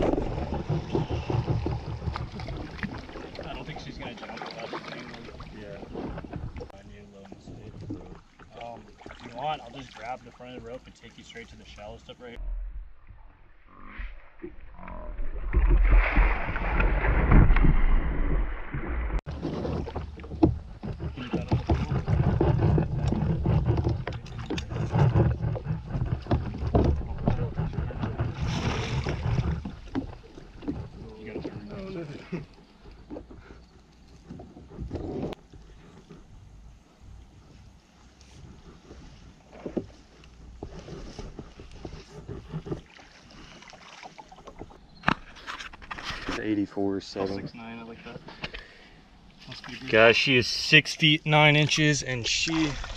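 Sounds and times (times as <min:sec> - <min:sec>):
fish thrashing and splashing water: 0:00.0 - 0:06.7, 0:15.3 - 0:31.0, 0:42.6 - 0:44.9, 0:52.3 - 0:52.9.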